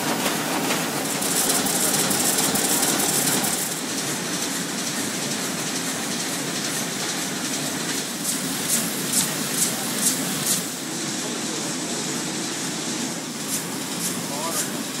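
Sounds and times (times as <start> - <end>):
printing press clattering: 0.0 - 15.0.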